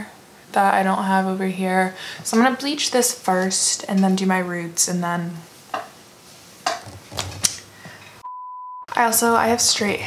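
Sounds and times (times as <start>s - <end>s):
censor bleep tone: 8.2s - 8.9s.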